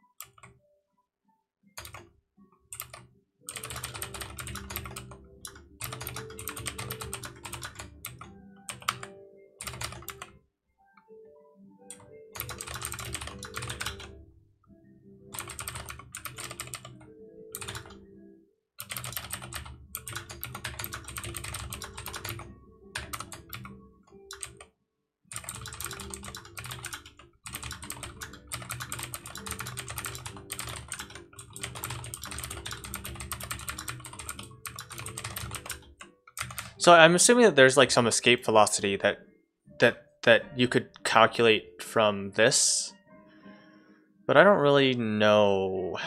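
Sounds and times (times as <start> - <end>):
typing on computer keyboard: 0.2 - 0.5, 1.8 - 2.0, 2.7 - 10.3, 11.9 - 14.2, 15.3 - 18.0, 18.8 - 24.7, 25.3 - 36.9.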